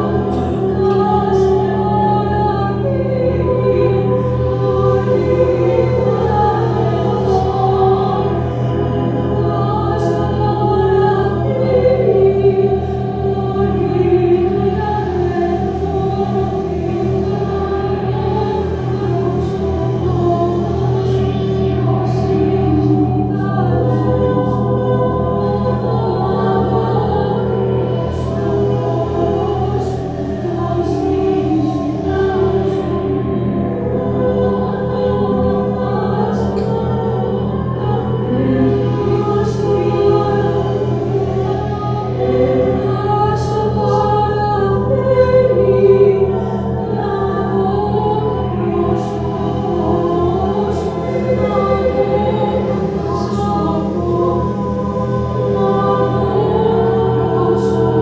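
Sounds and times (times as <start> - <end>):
choir of held voices: 0.0 - 58.0
steady low drone: 0.0 - 58.0.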